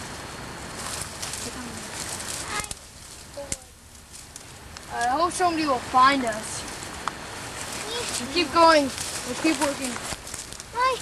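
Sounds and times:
rustling of sticks and leaves: 0.0s - 11.0s
child's voice: 2.4s - 2.8s, 7.8s - 10.0s, 10.7s - 11.0s.

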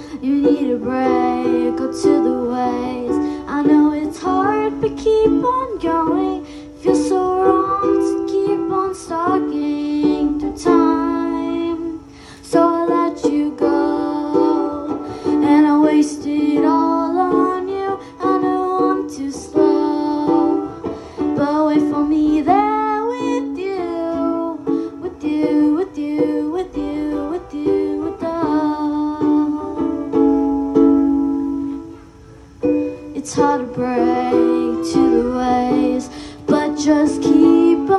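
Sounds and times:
girl singing: 0.0s - 37.9s
ukulele strumming: 0.0s - 37.9s.

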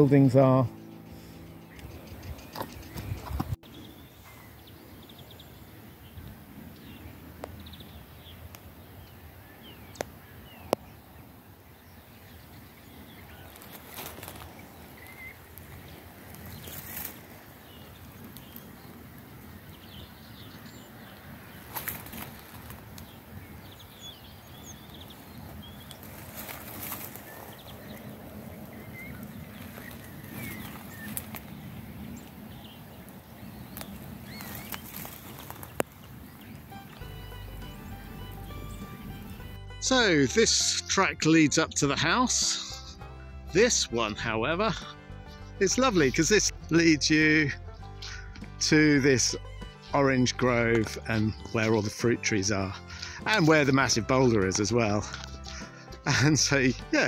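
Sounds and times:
music: 0.0s - 3.6s, 36.6s - 57.0s
small birds chirping: 0.0s - 57.0s
wind rumble on microphone: 1.8s - 3.8s
brief rustles and clicks: 16.4s - 17.3s, 21.6s - 23.1s, 25.9s - 27.5s, 33.8s - 36.0s.

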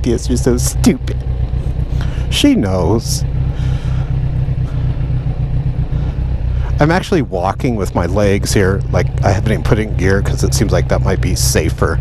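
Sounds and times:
man speaking: 0.0s - 1.2s, 2.0s - 4.9s, 6.0s - 12.0s
motorcycle engine idling: 0.0s - 12.0s.

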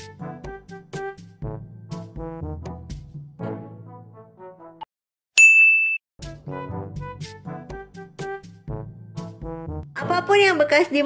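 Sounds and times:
brass-heavy background music: 0.0s - 4.9s, 6.2s - 11.0s
bright single-pitched ding: 5.4s - 6.0s.

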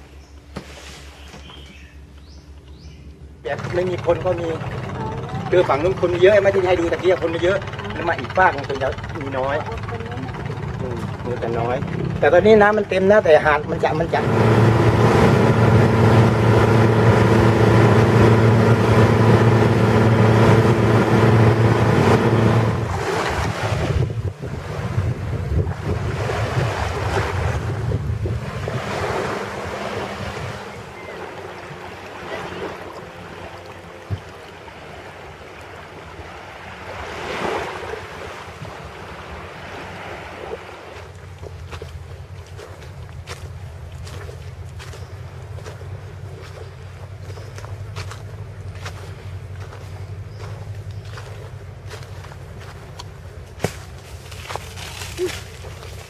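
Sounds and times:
boat engine running: 0.0s - 56.0s
waves washing: 3.4s - 56.0s
wind on microphone: 13.8s - 33.0s.

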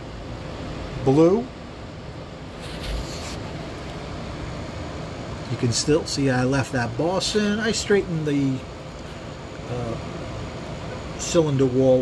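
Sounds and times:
room noise: 2.4s - 4.7s
brief rustle: 2.6s - 3.4s.

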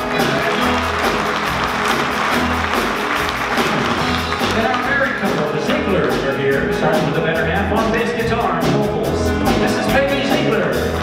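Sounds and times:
audience applauding: 0.0s - 5.6s
rock band playing: 0.0s - 11.0s.

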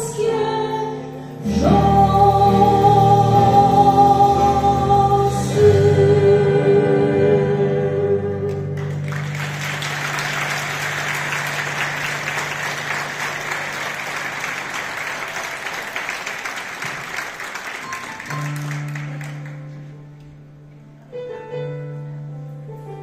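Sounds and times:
held keyboard chord: 0.0s - 13.8s
audience applause: 8.8s - 19.8s.

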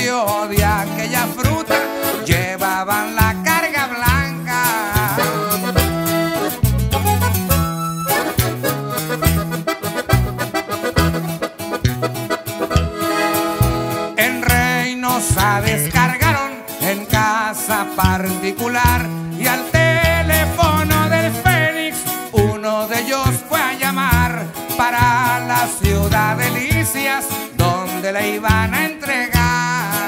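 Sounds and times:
button accordion melody: 0.0s - 30.0s
low bass notes: 0.6s - 2.6s, 3.2s - 16.5s, 18.0s - 22.6s, 23.2s - 27.0s.

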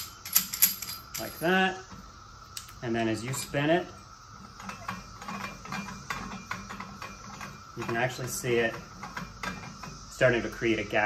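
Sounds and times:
metallic clicks and rattles: 0.0s - 1.5s.

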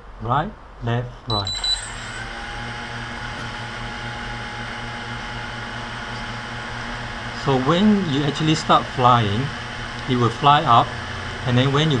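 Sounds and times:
drone motors humming: 1.4s - 12.0s.

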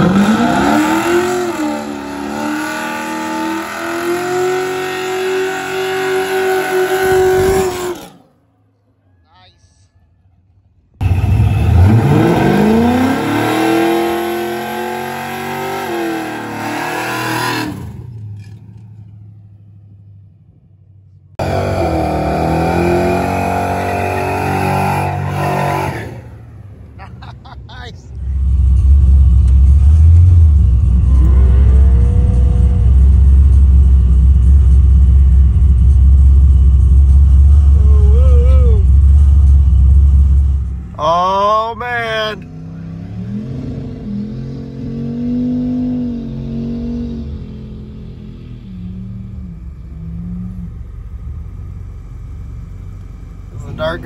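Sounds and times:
truck engine at high revs: 0.0s - 8.3s, 11.0s - 18.6s, 21.4s - 27.6s, 28.4s - 54.0s
car engines revving: 0.0s - 8.4s, 11.0s - 20.6s, 21.3s - 54.0s
loud deep engine rumble: 11.0s - 54.0s.

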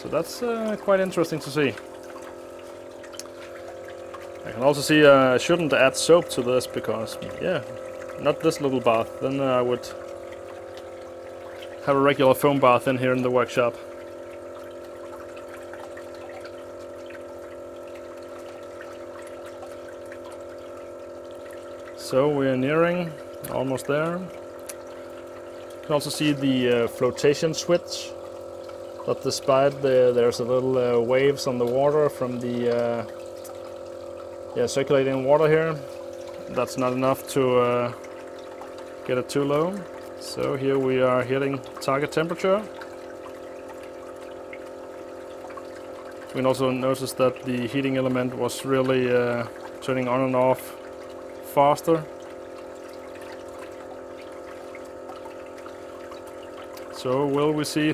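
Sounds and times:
drips and bubbles: 0.0s - 57.9s
pump motor humming: 0.0s - 57.9s
water splashing and trickling: 0.0s - 57.9s.

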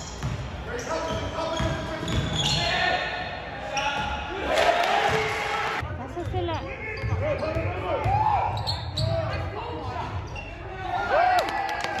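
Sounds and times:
sneakers squeaking on court: 0.0s - 2.8s, 6.1s - 9.4s.

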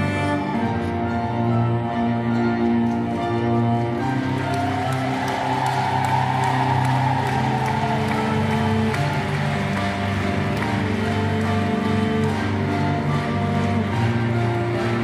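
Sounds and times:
cello long held notes: 0.0s - 15.0s
grand piano: 0.0s - 15.0s.

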